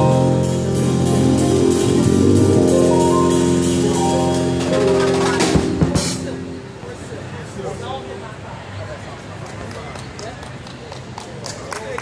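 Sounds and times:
indistinct voices talking: 0:00.8 - 0:09.6.

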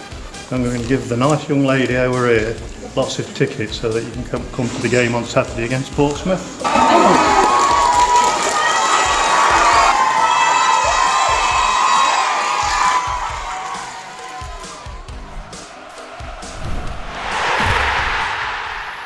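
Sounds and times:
children cheering and shouting: 0:06.6 - 0:16.6
rushing noise: 0:15.2 - 0:19.0.

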